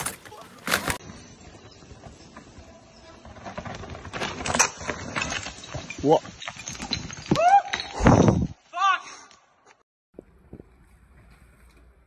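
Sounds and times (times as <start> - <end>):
mountain bike rattling over rocks: 0.0 - 8.6.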